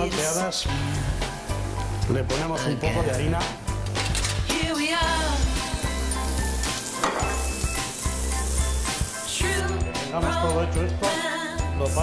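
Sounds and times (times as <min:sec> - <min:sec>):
background music with bass line: 0:00.0 - 0:12.0
mushrooms sizzling in a pan: 0:05.4 - 0:09.6.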